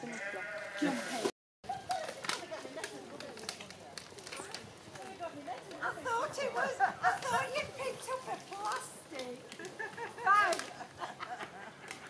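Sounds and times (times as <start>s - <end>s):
people talking at a distance: 0.0s - 10.9s
short clicks and crackles: 1.9s - 5.8s, 8.5s - 10.8s.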